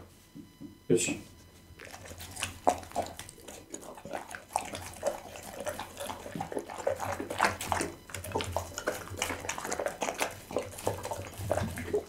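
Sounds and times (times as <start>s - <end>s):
dog chewing wet meat: 1.7s - 12.0s.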